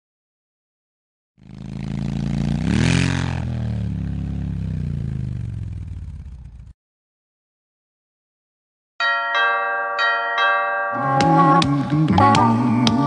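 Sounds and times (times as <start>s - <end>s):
motor engine revving: 1.4s - 6.7s, 11.0s - 13.0s.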